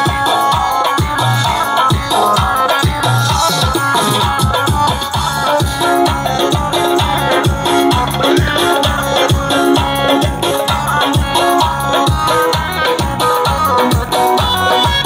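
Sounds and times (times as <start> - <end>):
fast electronic drum beat: 0.0 - 15.0
keyboard melody: 0.0 - 15.0.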